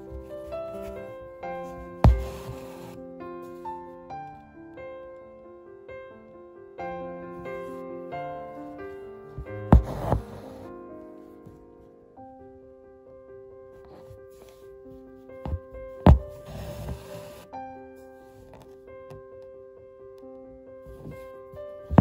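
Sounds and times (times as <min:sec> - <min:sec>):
thread rustling through fabric: 0:00.0 - 0:03.0, 0:09.4 - 0:10.7, 0:15.5 - 0:17.5
gentle sustained music: 0:00.0 - 0:22.0
needle popping through fabric: 0:02.0 - 0:03.0, 0:09.4 - 0:10.7, 0:15.5 - 0:17.4.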